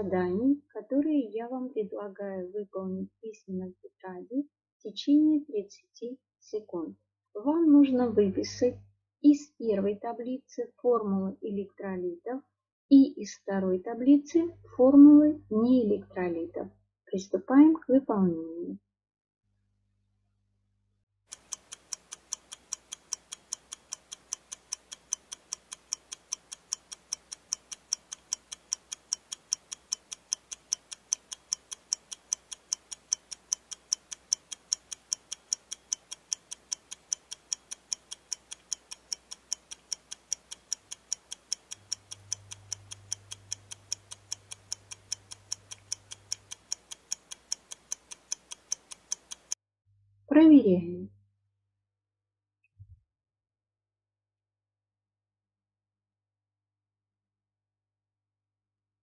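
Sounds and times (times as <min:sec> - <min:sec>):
clock ticking: 0:21.3 - 0:49.6.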